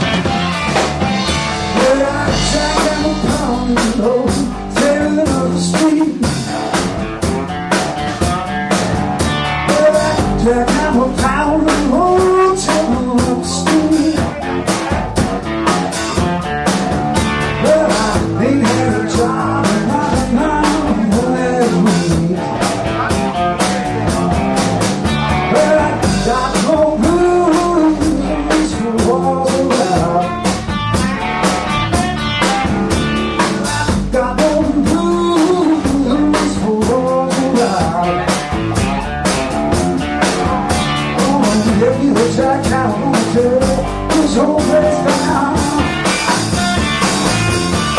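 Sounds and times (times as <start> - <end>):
drum kit steady beat: 0.0 - 47.9
electric bass: 0.0 - 47.9
electric guitar bending notes: 0.0 - 47.9.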